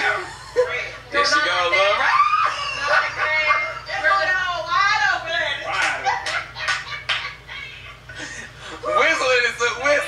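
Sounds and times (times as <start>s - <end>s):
excited voices shouting and shrieking: 1.2s - 5.3s.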